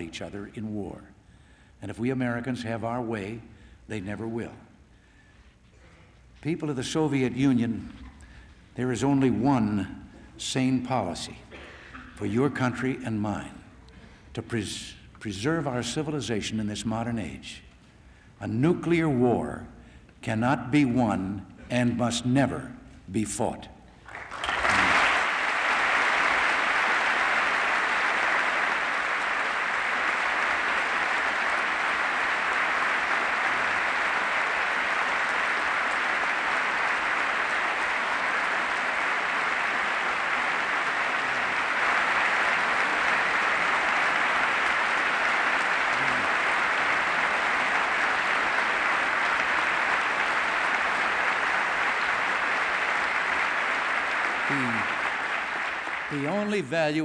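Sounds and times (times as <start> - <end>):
large audience applauding: 24.0 - 57.0.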